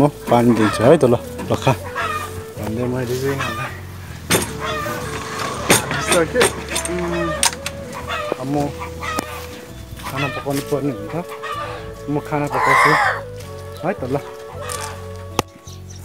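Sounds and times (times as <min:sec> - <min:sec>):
chickens clucking and calling: 0:00.0 - 0:15.9.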